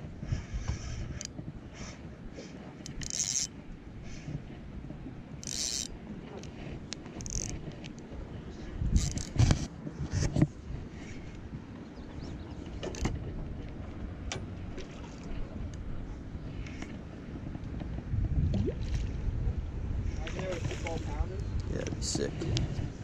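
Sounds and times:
fishing reel clicks: 0:02.9 - 0:03.5, 0:05.4 - 0:06.0, 0:07.2 - 0:07.6, 0:09.0 - 0:09.4.

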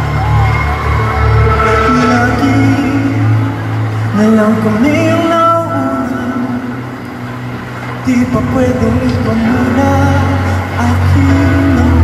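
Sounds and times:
band holding low chord: 0:00.0 - 0:12.0.

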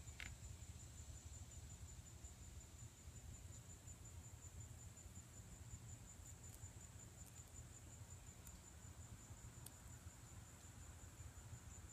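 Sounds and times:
faint ticks: 0:00.0 - 0:00.4, 0:06.2 - 0:07.6, 0:08.3 - 0:08.7, 0:09.5 - 0:09.9, 0:10.5 - 0:10.8
high-pitched insect trill: 0:00.0 - 0:11.9.

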